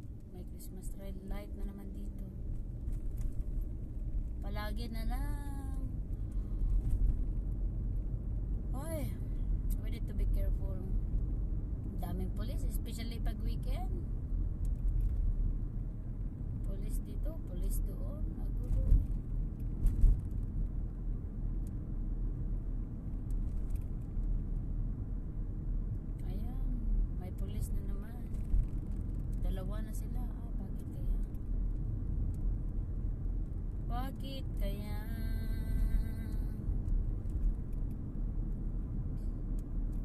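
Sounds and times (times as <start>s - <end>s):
car interior road rumble: 0.0s - 40.0s.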